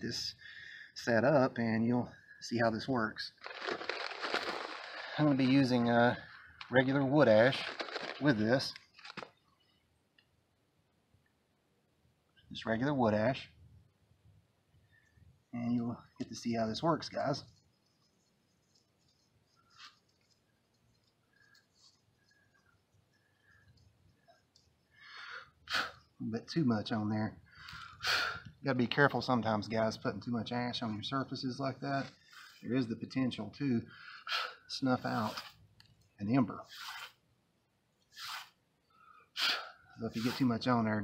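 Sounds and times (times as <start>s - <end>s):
man breathing: 0.4s - 1.0s, 24.9s - 26.0s.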